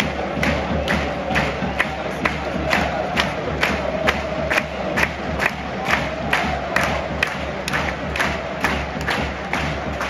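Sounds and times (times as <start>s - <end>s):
crowd clapping in unison: 0.0s - 10.0s
stadium crowd chanting: 0.0s - 10.0s.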